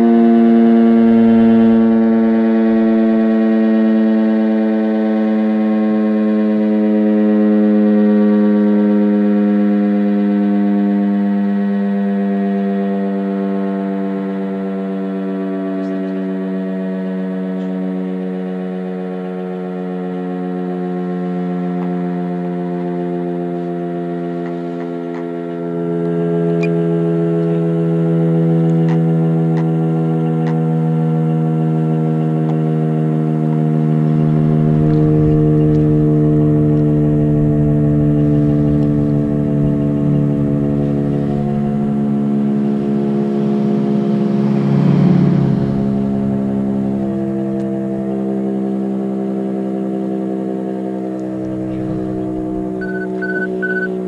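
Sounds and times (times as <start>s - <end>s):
siren winding down: 0.0s - 54.0s
wind rumble on microphone: 34.4s - 48.1s.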